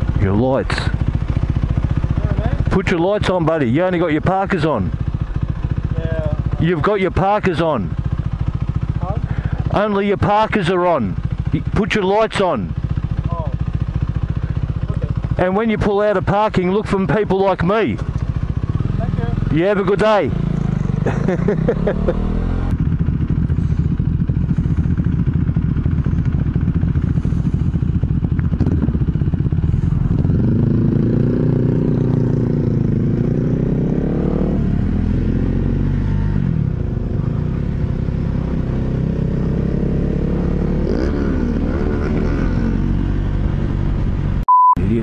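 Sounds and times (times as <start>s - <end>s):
motorcycle engine running: 0.0s - 45.0s.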